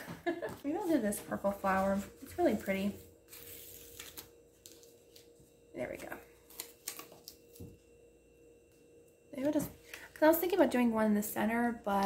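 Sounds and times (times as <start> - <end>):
paper rustling: 3.3 - 5.3.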